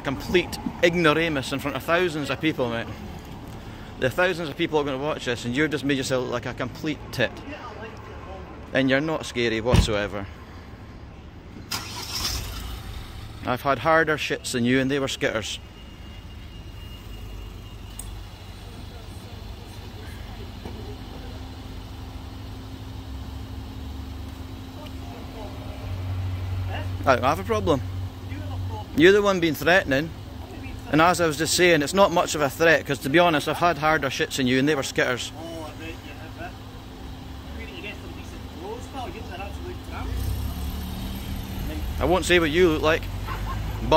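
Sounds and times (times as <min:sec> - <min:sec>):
car engine idling: 0:09.6 - 0:43.9
faint voices: 0:18.2 - 0:22.2.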